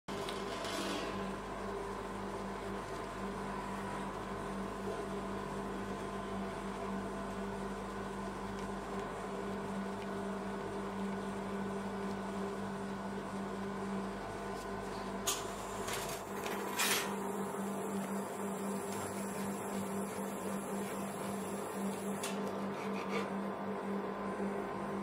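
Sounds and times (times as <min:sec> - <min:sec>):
refrigeration unit electrical hum: 0:00.1 - 0:25.0.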